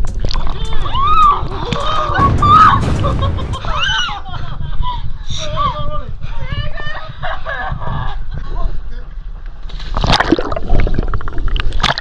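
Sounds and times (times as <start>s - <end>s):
underwater bubbles: 10.0s - 12.0s.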